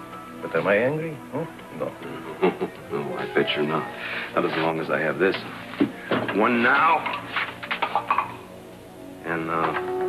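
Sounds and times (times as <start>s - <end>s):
soft background music: 0.0s - 10.0s
man talking: 2.9s - 5.5s.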